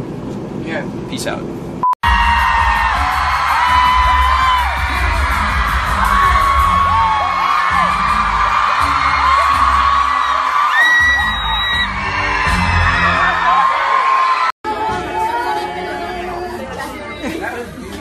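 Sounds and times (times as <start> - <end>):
loud amplified pop music: 2.0 - 14.1, 14.7 - 17.6
fans screaming: 2.0 - 16.0.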